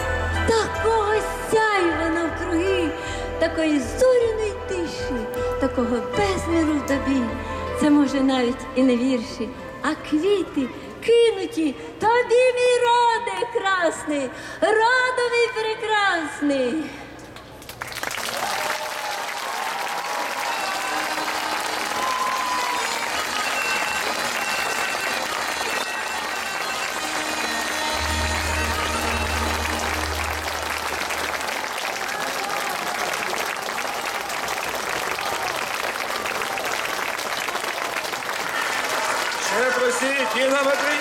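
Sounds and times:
audience applauding: 0:17.7 - 0:41.0.

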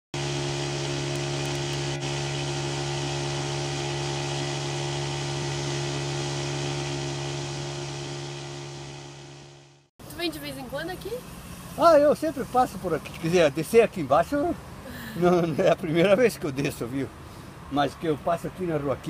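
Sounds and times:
outboard motor humming: 0:00.2 - 0:11.8
rushing water hiss: 0:10.3 - 0:15.3.

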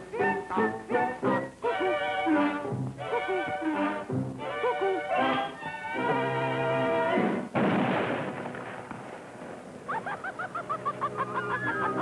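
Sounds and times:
burst of noise: 0:07.4 - 0:10.2.

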